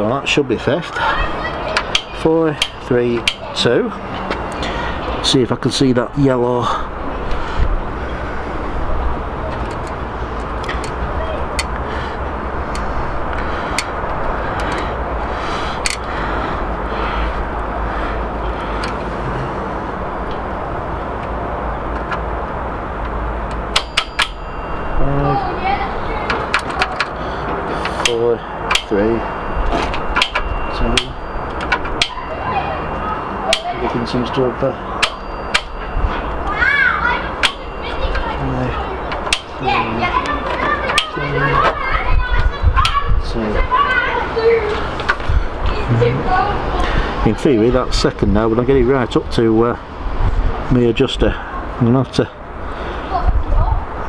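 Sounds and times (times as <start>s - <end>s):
rumbling outdoor background noise: 0.0s - 54.0s
distant children's voices: 0.7s - 5.3s, 6.6s - 20.0s, 24.4s - 31.2s, 31.8s - 47.8s, 52.7s - 54.0s
sharp clicks: 27.8s - 28.9s, 39.1s - 39.6s.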